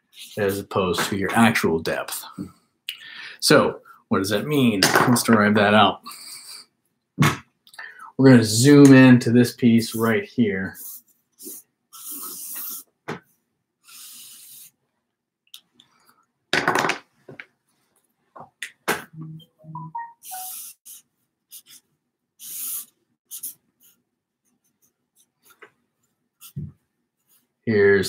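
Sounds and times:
marker pen scratching on paper: 10.8s - 12.9s, 20.2s - 27.5s
marker pen squeaking: 10.8s - 12.9s, 20.2s - 21.8s, 22.4s - 24.0s.

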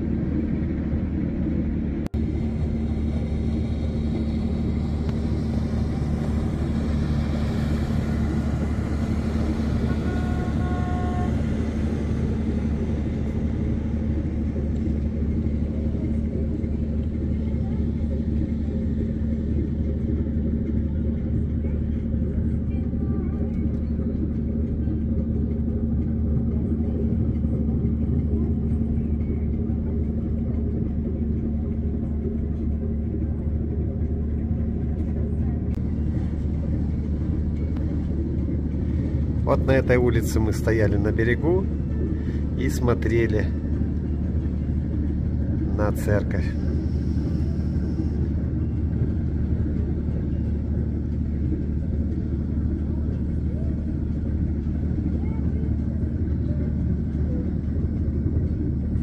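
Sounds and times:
ship engines droning: 0.0s - 59.0s.

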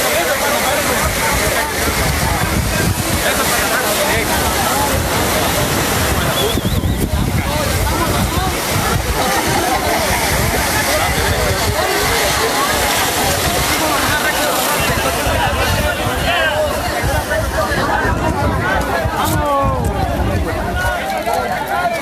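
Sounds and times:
constant rushing noise: 0.0s - 22.0s
crowd shouting and talking: 0.0s - 22.0s.

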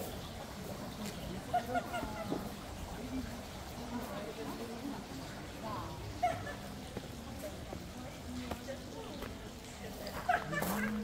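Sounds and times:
distant people chatting: 0.0s - 11.0s.

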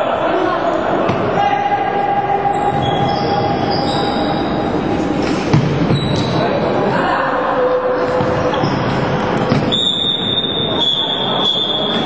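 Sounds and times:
sports hall din: 0.0s - 12.0s
shoe squeaks: 2.5s - 6.5s, 8.2s - 12.0s.

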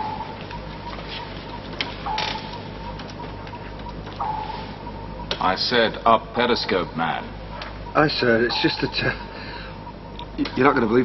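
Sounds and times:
sonar ping: 0.0s - 0.7s, 2.0s - 3.4s, 4.1s - 5.4s, 7.6s - 9.4s
steady low hum: 0.0s - 11.0s.

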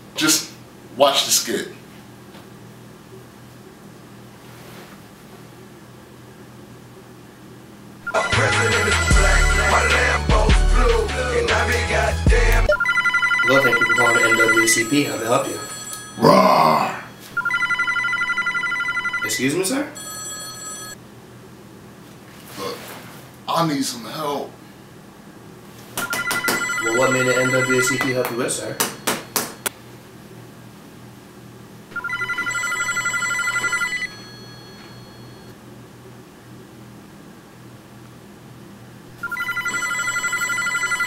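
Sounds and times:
telephone ringer warbling trill: 8.0s - 10.2s, 12.7s - 21.0s, 26.0s - 29.6s, 31.9s - 35.5s, 39.2s - 41.0s.

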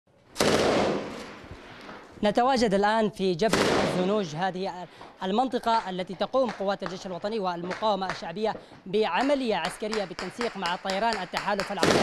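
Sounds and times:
machine gun firing: 0.4s - 1.3s, 11.7s - 12.0s.

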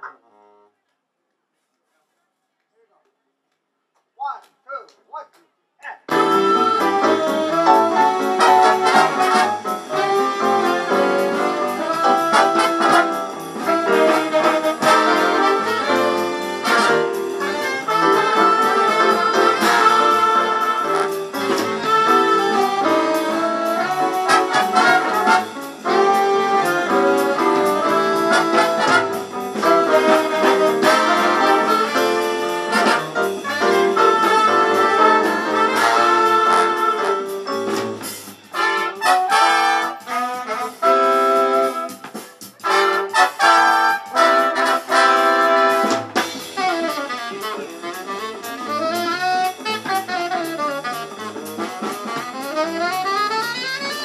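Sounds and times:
big band jazz playing: 6.1s - 54.0s.

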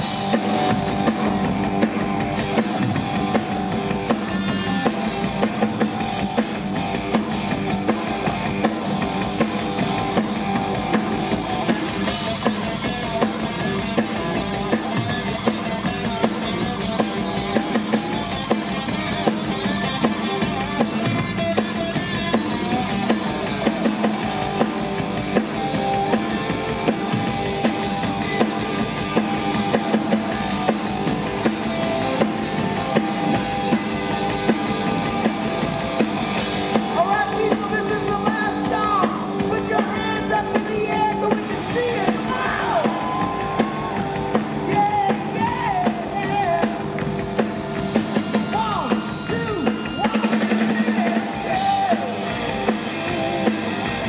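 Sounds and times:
distorted electric guitars: 0.0s - 54.0s
drum kit steady beat: 0.0s - 54.0s.

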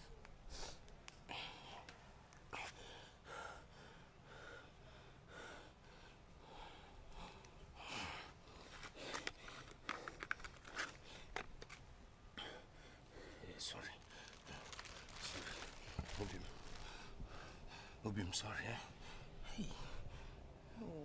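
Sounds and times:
small clicks and crackles: 8.6s - 11.8s, 13.9s - 17.0s.

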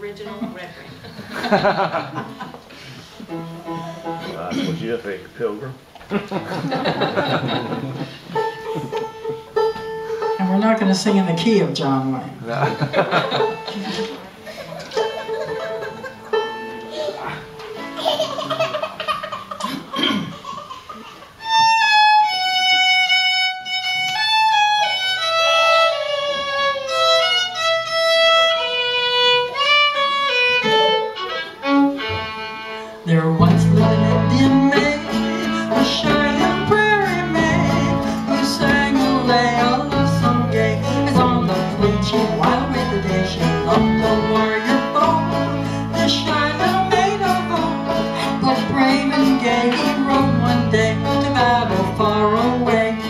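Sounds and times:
folk string band playing: 0.0s - 53.0s
fiddle melody: 2.8s - 19.6s, 20.5s - 53.0s.

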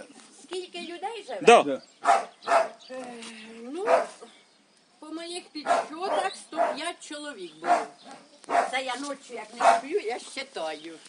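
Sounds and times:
dog barks: 2.0s - 2.8s, 3.8s - 4.2s, 5.6s - 6.9s, 7.6s - 8.8s, 9.6s - 10.0s.

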